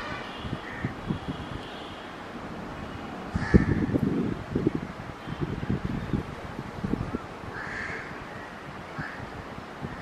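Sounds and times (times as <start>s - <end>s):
crow cawing: 0.6s - 0.9s, 3.4s - 3.9s, 7.5s - 8.1s, 9.0s - 9.2s.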